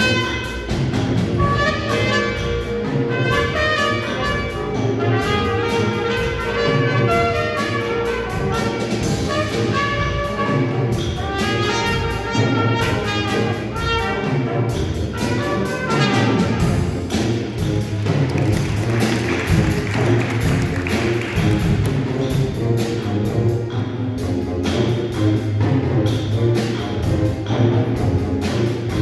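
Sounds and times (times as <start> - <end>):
jazz band playing: 0.0 - 29.0.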